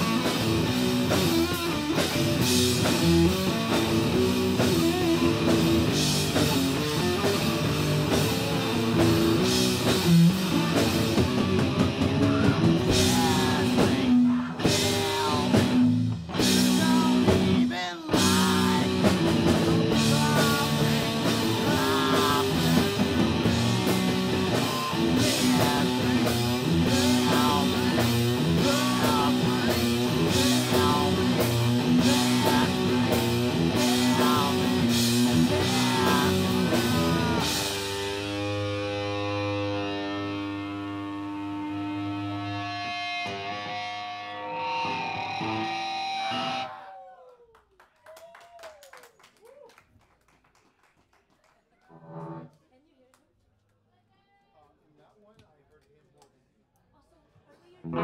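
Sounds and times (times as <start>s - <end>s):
drums: 0.0s - 46.7s
bass guitar: 0.0s - 46.9s, 51.9s - 52.5s
electric guitar: 0.0s - 47.2s, 51.9s - 52.5s.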